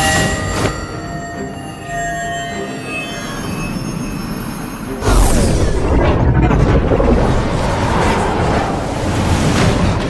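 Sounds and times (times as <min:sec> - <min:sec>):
shrill magic energy ringing: 0:00.0 - 0:06.6.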